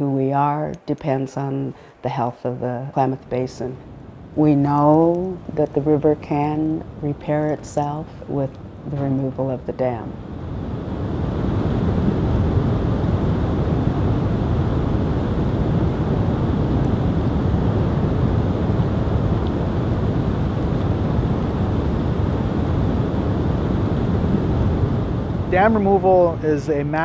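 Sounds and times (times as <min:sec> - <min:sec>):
deep rushing noise: 0:10.2 - 0:27.0.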